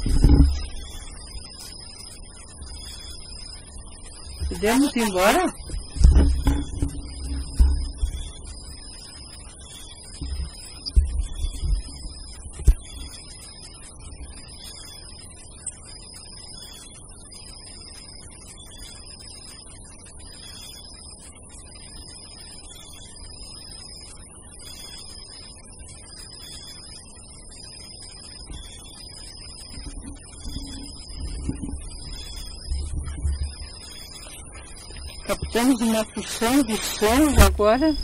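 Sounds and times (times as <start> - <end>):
insects chirping: 0.0 - 38.0.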